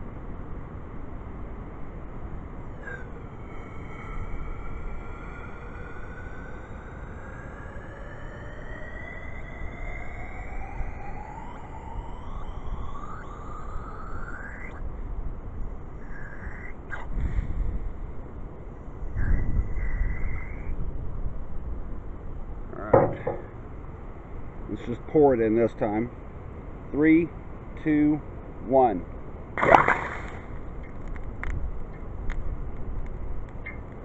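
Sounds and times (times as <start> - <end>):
wind rumbling on microphone: 0.0 - 34.0
knocks: 22.9 - 23.5.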